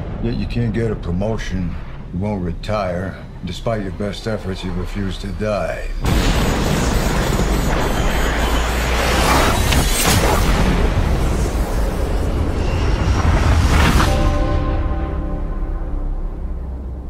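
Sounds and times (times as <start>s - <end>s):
deep booms: 0.0s - 8.1s
fighter jet roar: 0.0s - 14.9s.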